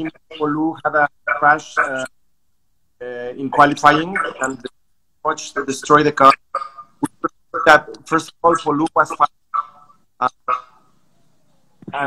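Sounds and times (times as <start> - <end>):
man speaking: 0.0 - 2.1, 3.0 - 6.4, 7.0 - 9.3, 10.2 - 10.4
man saying uh: 3.0 - 4.7.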